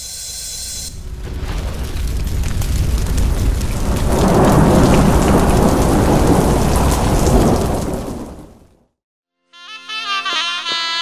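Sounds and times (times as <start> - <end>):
heavy rain: 0.9 - 8.9
rolling thunder: 0.9 - 8.9.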